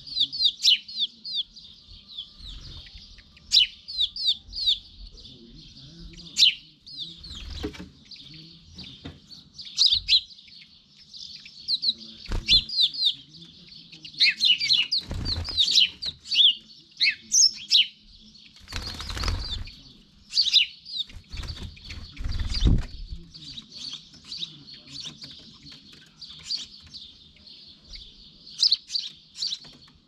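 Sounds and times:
sparrows chirping: 0.0 - 30.0
bird wingbeats: 18.6 - 19.8, 21.1 - 23.2.

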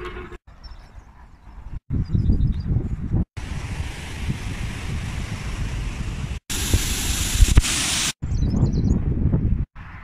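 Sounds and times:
wind on phone microphone: 1.6 - 10.0.

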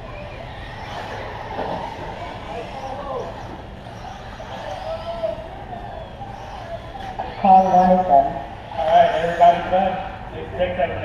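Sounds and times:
engine-like drone: 0.0 - 11.0
indistinct voices talking: 0.0 - 11.0.

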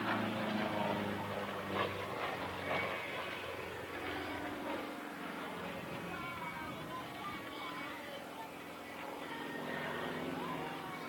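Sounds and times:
faint spectator chatter: 0.0 - 11.0
propeller plane engine overhead: 0.0 - 11.0.

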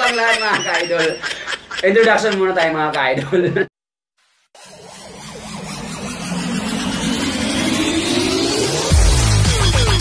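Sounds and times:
electronic dance music: 0.0 - 2.8, 4.6 - 10.0
faint rising tone: 4.6 - 9.0
rushing build-up noise: 4.6 - 9.5.

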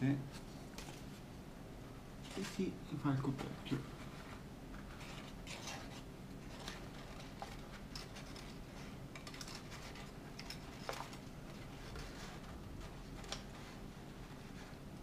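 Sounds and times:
paper rustling and crinkling: 0.3 - 1.2, 2.2 - 15.0.

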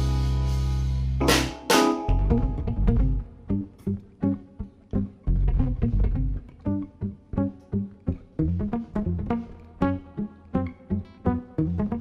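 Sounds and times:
live jazz trio: 0.0 - 3.2
plucked low notes: 0.0 - 12.0.

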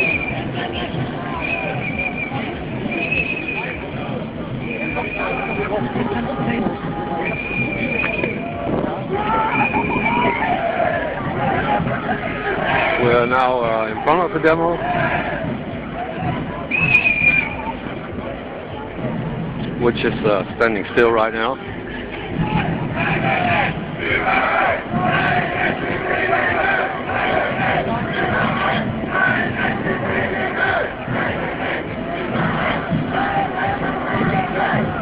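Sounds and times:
whistle blown: 0.0 - 3.9, 4.6 - 5.8, 7.2 - 8.6, 9.3 - 10.5, 16.7 - 17.8
crowd babble: 0.0 - 35.0.

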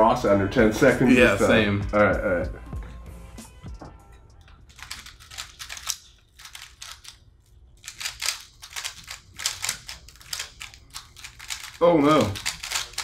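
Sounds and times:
plastic puzzle cube clicking turns: 4.7 - 7.2, 7.8 - 13.0.

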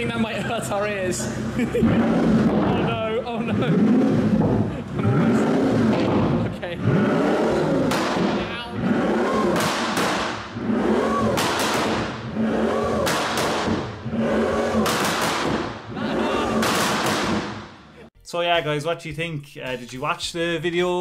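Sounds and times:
car engine revving: 0.0 - 18.1
exhaust cracks: 0.0 - 18.1.

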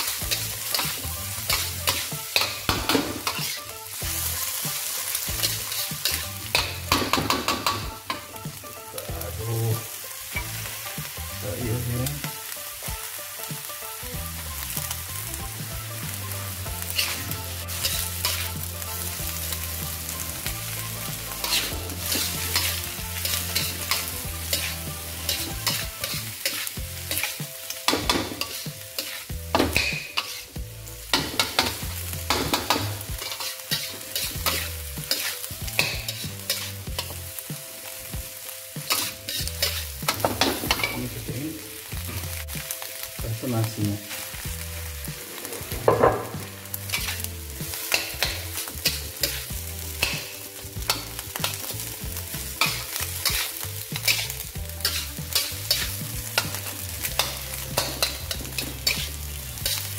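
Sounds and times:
metal spatula scraping a wok: 0.0 - 8.4, 16.0 - 37.3, 38.8 - 41.2, 44.1 - 59.9
food sizzling in hot oil: 0.0 - 59.9.

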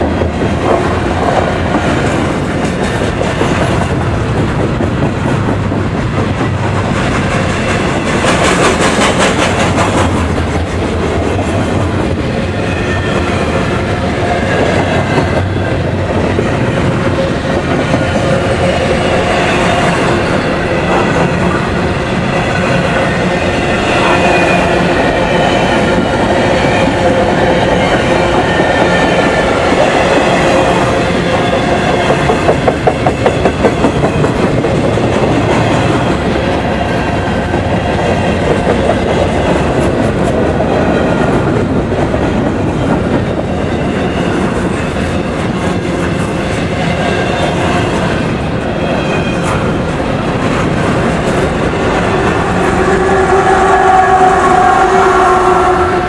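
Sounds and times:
steel wheels rumbling on rail: 0.0 - 56.0.

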